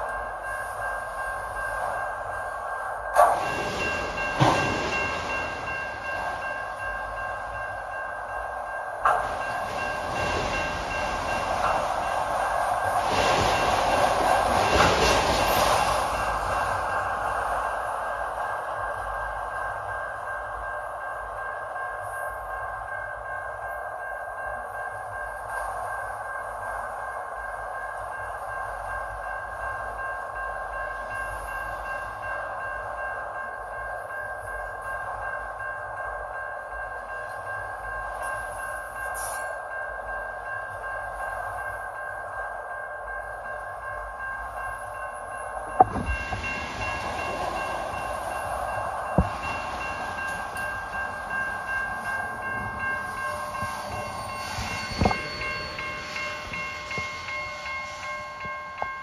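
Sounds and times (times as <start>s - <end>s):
steel wheels rumbling on rail: 0.0s - 59.0s.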